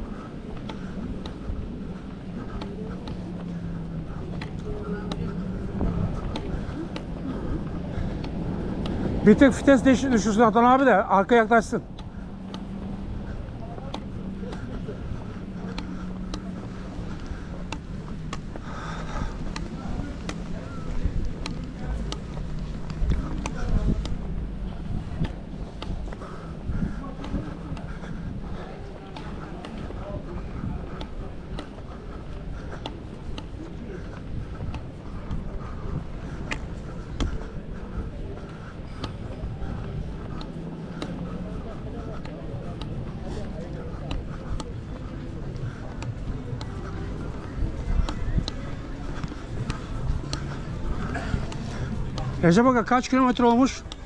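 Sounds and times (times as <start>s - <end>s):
faint voices: 0.0s - 54.0s
steady low rumble: 0.0s - 54.0s
trekking pole tips clicking: 0.5s - 10.8s, 11.4s - 54.0s.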